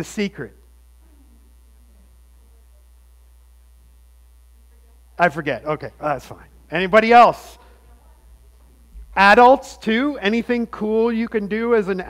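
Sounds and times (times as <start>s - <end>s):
low electrical hum: 0.0s - 12.0s.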